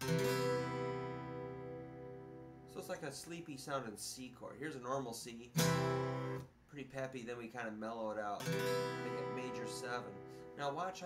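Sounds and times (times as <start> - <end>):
acoustic guitar chord strummed: 0.0 - 2.7, 5.6 - 6.5, 8.4 - 10.8.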